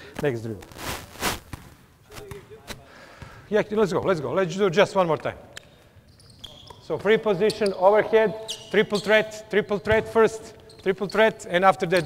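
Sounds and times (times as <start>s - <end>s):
basketballs bouncing on floor: 1.4s - 2.4s, 3.2s - 4.2s, 9.7s - 12.0s.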